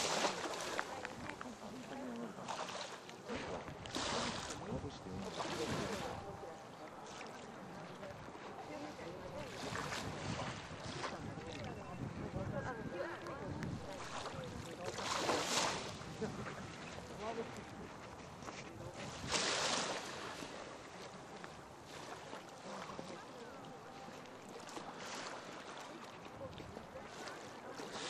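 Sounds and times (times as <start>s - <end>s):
faint chatter of voices: 0.0s - 28.0s
small waves washing onto beach: 0.0s - 28.0s.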